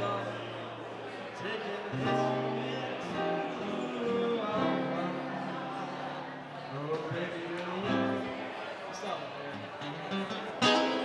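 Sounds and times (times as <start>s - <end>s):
man singing: 0.0s - 0.6s, 1.4s - 8.4s
strummed acoustic guitar: 0.0s - 8.7s, 9.5s - 11.0s.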